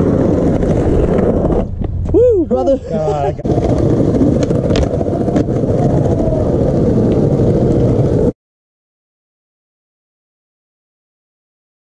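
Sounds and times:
skateboard wheels rolling on concrete: 0:00.0 - 0:08.4.

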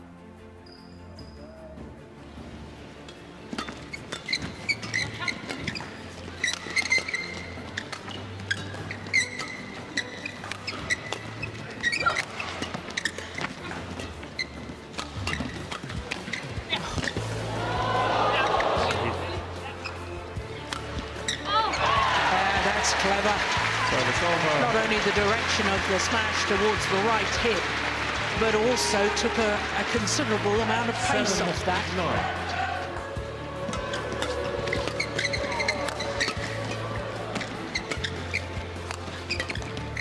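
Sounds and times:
music: 0:00.0 - 0:40.0
shoes squeaking on court floor: 0:00.6 - 0:17.5, 0:18.4 - 0:40.0
racket striking shuttlecock: 0:14.9 - 0:17.2, 0:20.6 - 0:21.4
voices: 0:21.4 - 0:38.2.

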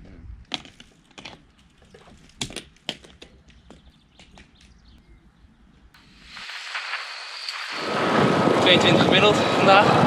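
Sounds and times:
wind on microphone: 0:04.8 - 0:10.0.

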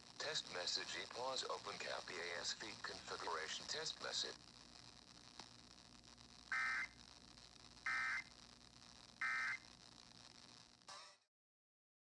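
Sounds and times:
data tone bursts from radio speaker: 0:06.5 - 0:07.0, 0:07.8 - 0:08.4, 0:09.2 - 0:09.7.

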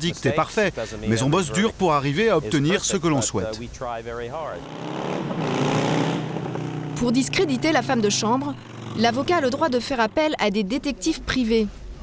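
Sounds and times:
passing traffic: 0:00.0 - 0:12.0
motorcycle engine approaching: 0:04.4 - 0:10.7.

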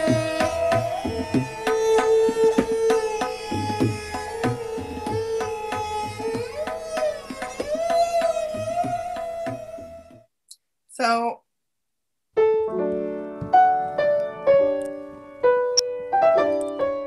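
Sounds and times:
sarangi bowing a sliding melody: 0:00.0 - 0:10.3
tabla strokes: 0:00.0 - 0:10.3.

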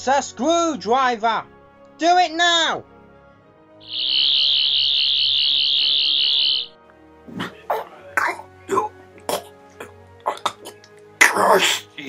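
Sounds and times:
quiet background music: 0:00.0 - 0:12.0
high warbling whine: 0:03.9 - 0:06.7
person coughing: 0:07.3 - 0:11.9.

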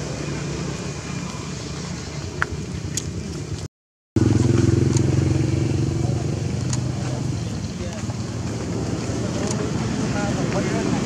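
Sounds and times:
engine running drone: 0:00.0 - 0:11.0.

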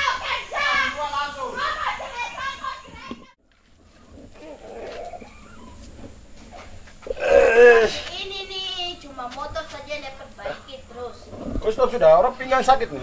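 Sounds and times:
children talking and calling: 0:00.0 - 0:03.4, 0:04.3 - 0:13.0.

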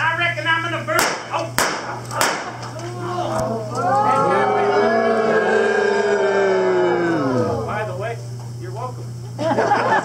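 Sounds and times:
revolver blank shots: 0:01.0 - 0:02.7.

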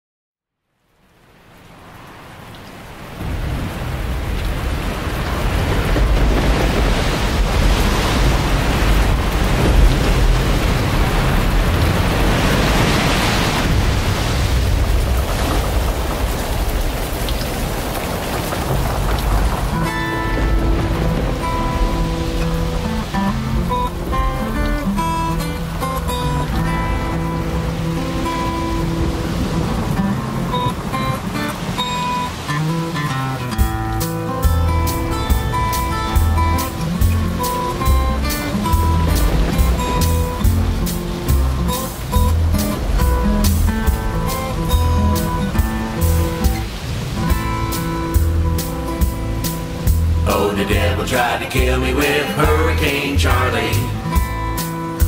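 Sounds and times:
heavy rain: 0:00.6 - 0:55.0
low storm rumble: 0:01.6 - 0:30.9, 0:34.5 - 0:54.6
acoustic guitar picking: 0:19.7 - 0:55.0.

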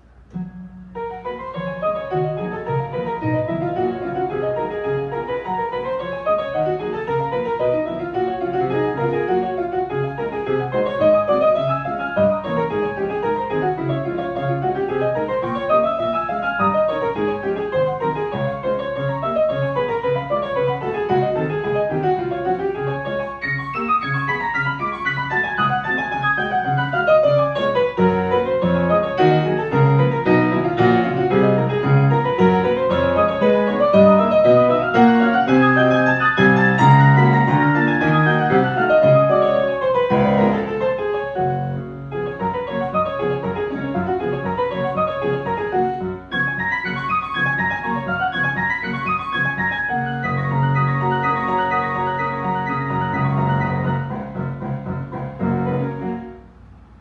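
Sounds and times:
classical-style piano piece: 0:00.0 - 0:57.0.

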